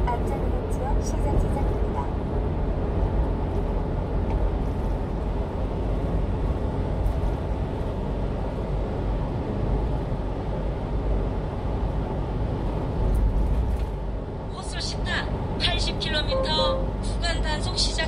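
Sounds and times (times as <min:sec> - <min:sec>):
truck engine and road rumble: 0:00.0 - 0:18.0.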